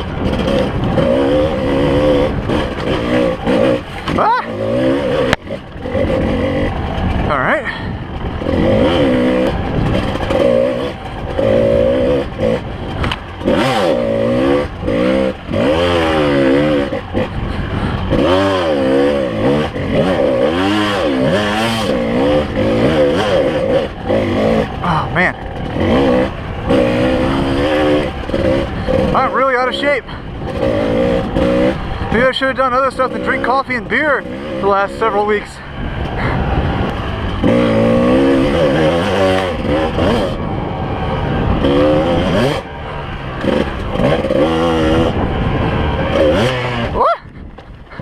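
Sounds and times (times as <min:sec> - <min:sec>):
dirt bike engine revving: 0:00.0 - 0:47.2.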